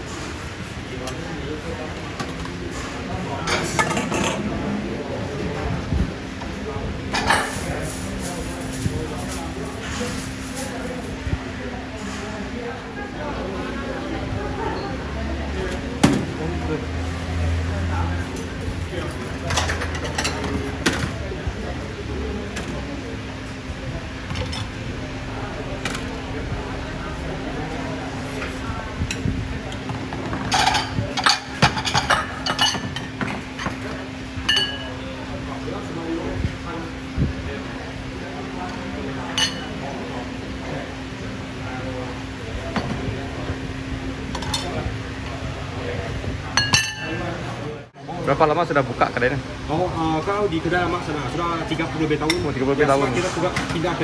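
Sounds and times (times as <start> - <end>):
porcelain bowls and ladle clinking: 34.4 - 35.0, 46.6 - 47.3.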